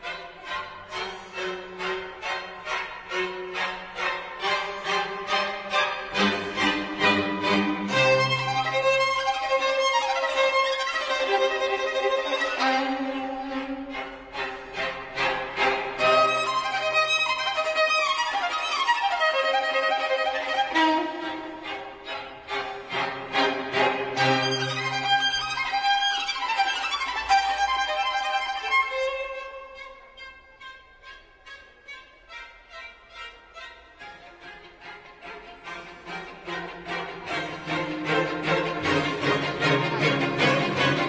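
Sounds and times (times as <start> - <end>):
violin with string accompaniment: 0.0 - 41.0.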